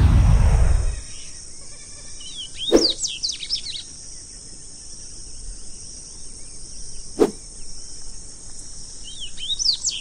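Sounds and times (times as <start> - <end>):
songbird singing high notes: 1.0 - 3.8.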